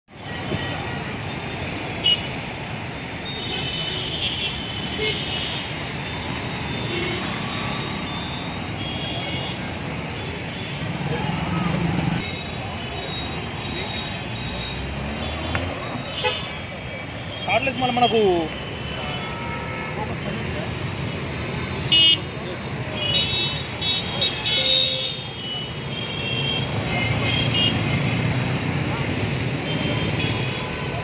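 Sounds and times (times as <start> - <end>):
busy road traffic: 0.0 - 31.0
cars and motorbikes passing: 0.1 - 31.0.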